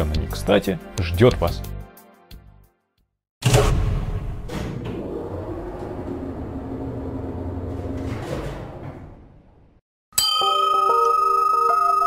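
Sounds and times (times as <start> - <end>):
bell-like chime with tinkling music: 10.2 - 12.0.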